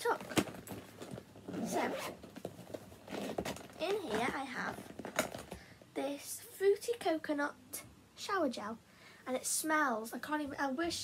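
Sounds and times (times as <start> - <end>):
zipper pulled open: 1.4 - 2.4, 3.0 - 5.3.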